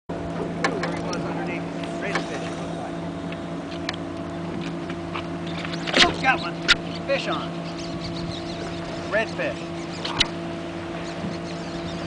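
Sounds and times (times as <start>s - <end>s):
boat motor running: 0.1s - 12.0s.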